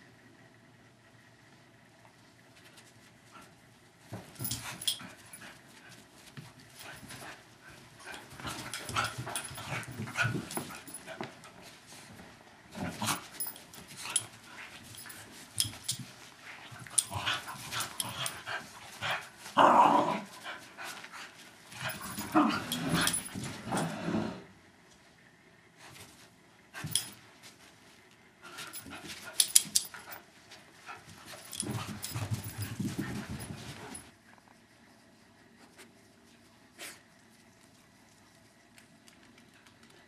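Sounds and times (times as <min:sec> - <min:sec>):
dogs scuffling and growling: 0:02.4 - 0:24.5, 0:25.9 - 0:35.1.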